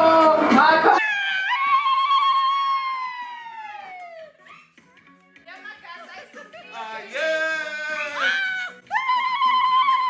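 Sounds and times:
woman's high-pitched celebratory cry: 0:01.0 - 0:04.6, 0:07.5 - 0:10.0.

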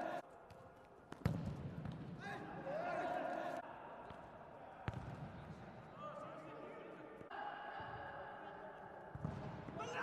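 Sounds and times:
hollow arena background: 0:00.0 - 0:10.0
ball struck on indoor court: 0:00.5 - 0:02.2, 0:04.8 - 0:05.3.

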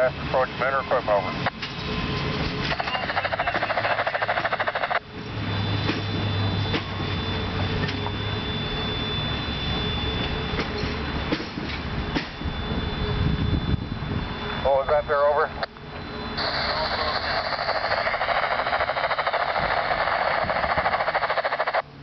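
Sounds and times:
train rumbling: 0:00.0 - 0:22.0
harsh radio static: 0:02.7 - 0:05.0, 0:14.6 - 0:15.7, 0:16.4 - 0:21.8.

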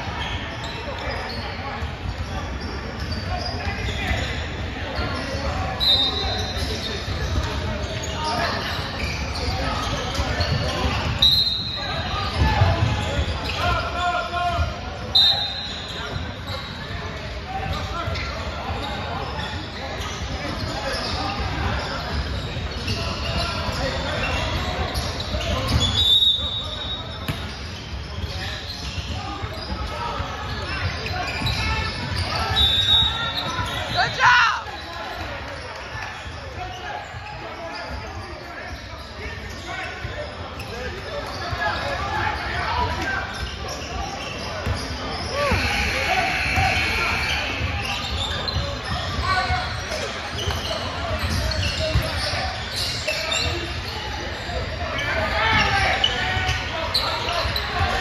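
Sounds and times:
chatter and shouts of people: 0:00.0 - 0:58.0.

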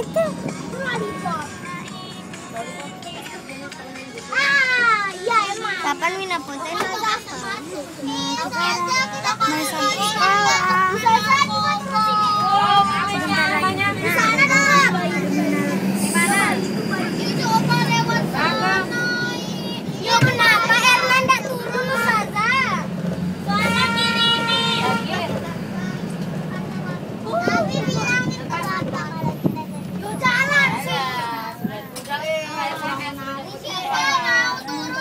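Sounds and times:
children talking and shouting: 0:00.0 - 0:35.0
vehicle engine humming: 0:00.0 - 0:35.0.

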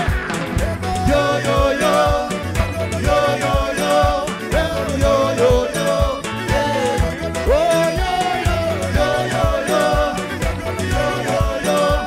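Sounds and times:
loud music with steady beat: 0:00.0 - 0:12.0.

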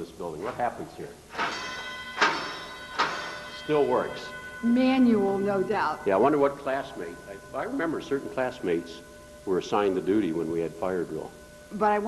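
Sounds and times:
fire alarm bell ringing: 0:01.3 - 0:12.0.

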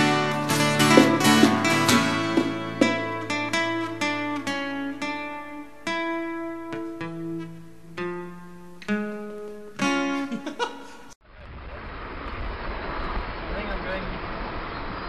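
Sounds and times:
guitar plucking notes and chords: 0:00.0 - 0:10.7.

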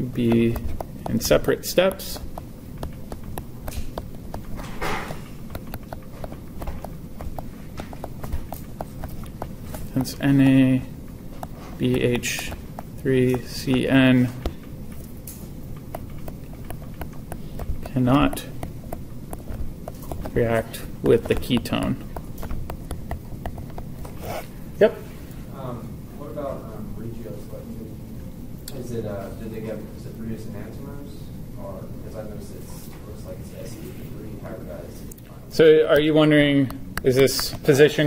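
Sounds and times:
stylus clicking on tablet screen: 0:00.0 - 0:10.8, 0:11.4 - 0:15.1, 0:15.8 - 0:24.2
low background hum: 0:00.0 - 0:38.0.

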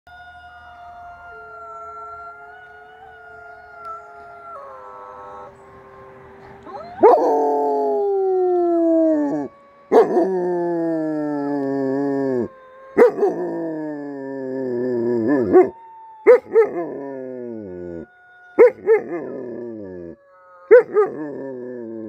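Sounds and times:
chorus of wolf howls: 0:00.1 - 0:22.0
loud long howls: 0:00.1 - 0:22.0.

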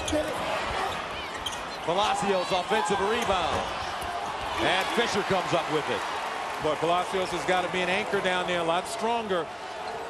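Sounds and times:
basketball players scrambling: 0:00.0 - 0:06.5
arena crowd noise: 0:00.0 - 0:10.0.

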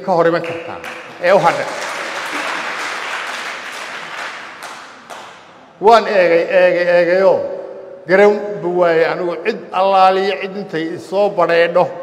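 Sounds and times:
audience applause: 0:00.4 - 0:05.5.

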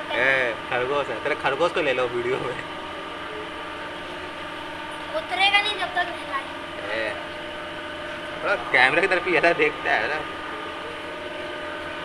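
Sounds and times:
steady mechanical hum: 0:00.0 - 0:12.0.

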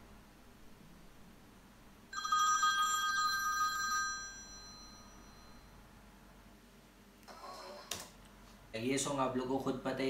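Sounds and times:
telephone ringing: 0:02.2 - 0:05.7.

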